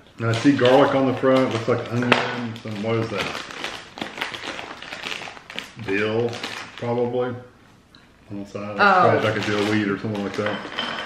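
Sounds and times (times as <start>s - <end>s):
plastic snack bag crinkling: 0.2s - 7.2s, 9.1s - 10.8s.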